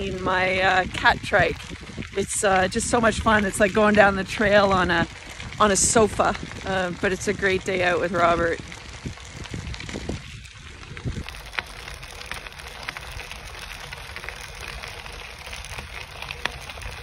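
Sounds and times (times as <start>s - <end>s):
small ticks and crackles: 0.0s - 17.0s
tyres crunching on gravel: 0.0s - 17.0s.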